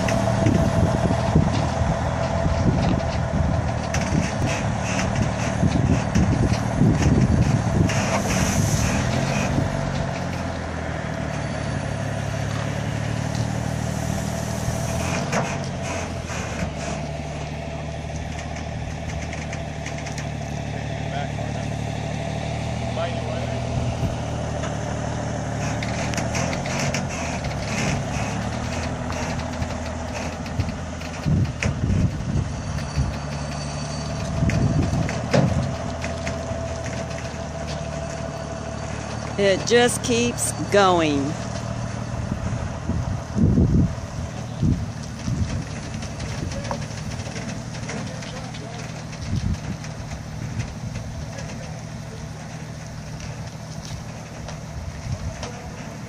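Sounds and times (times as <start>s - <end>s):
diesel truck engine pulling load: 0.0s - 56.0s.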